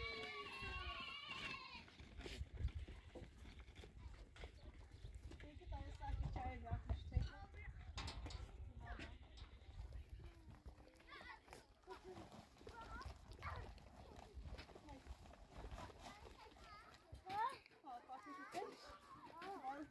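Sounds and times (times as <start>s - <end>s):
lambs and goat bleating: 0.0s - 3.3s.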